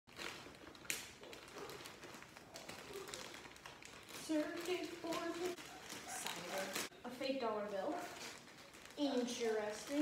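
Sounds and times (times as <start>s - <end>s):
plastic bag rustling: 0.1s - 10.0s.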